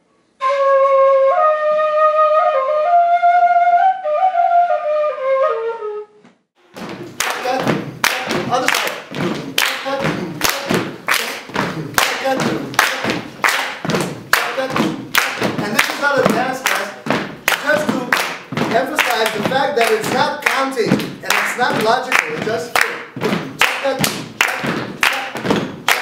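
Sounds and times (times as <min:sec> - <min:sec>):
group clapping a rhythm: 0:06.6 - 0:26.0.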